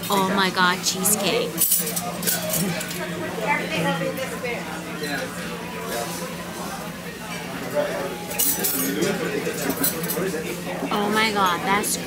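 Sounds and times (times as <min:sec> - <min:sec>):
faint indistinct voices: 0:00.0 - 0:12.0
cutlery and glassware clinking: 0:01.2 - 0:03.1, 0:08.2 - 0:12.0.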